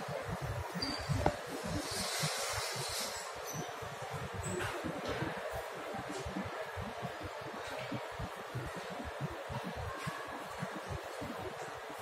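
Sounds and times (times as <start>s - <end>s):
indoor mall ambience: 0.0s - 12.0s.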